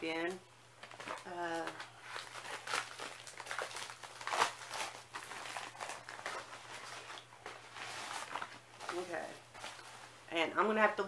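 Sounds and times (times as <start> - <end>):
plastic packaging crinkling: 0.8 - 10.2.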